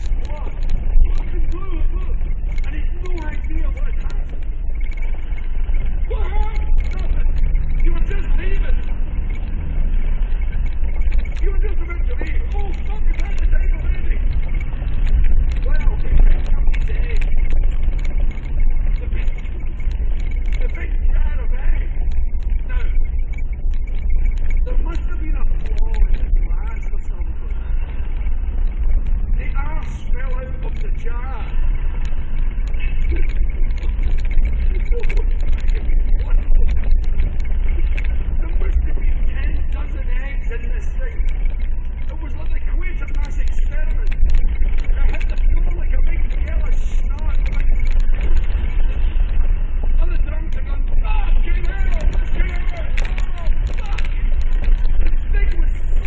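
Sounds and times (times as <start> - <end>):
engine and road rumble: 0.0 - 56.0.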